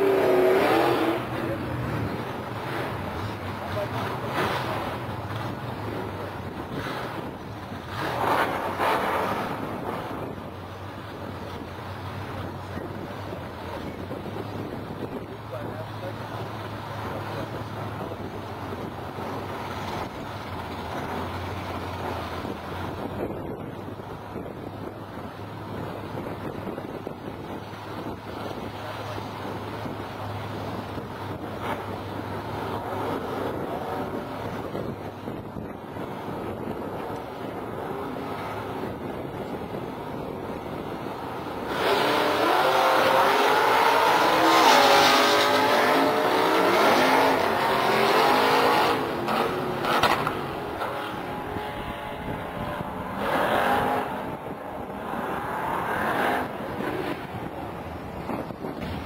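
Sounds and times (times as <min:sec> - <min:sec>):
car engines idling: 0:00.0 - 0:59.0
cars accelerating at full throttle: 0:00.0 - 0:59.0.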